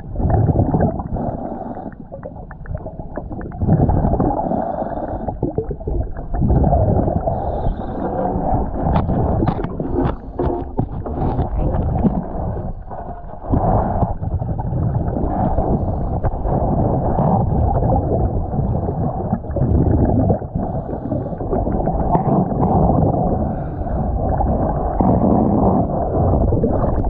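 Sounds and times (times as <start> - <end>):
underwater rumbling and gurgling: 0.0 - 27.0.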